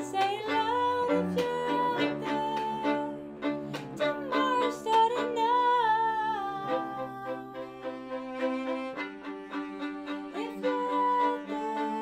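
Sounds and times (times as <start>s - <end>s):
cello: 0.0s - 12.0s
violin: 0.0s - 12.0s.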